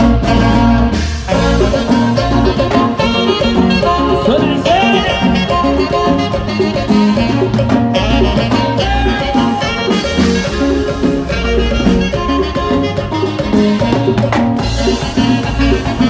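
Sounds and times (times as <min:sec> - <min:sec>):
live band playing dance music: 0:00.0 - 0:16.0.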